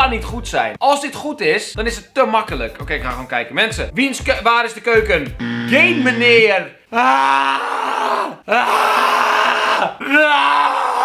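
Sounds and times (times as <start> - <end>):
young man groaning and screaming: 6.9 - 11.0.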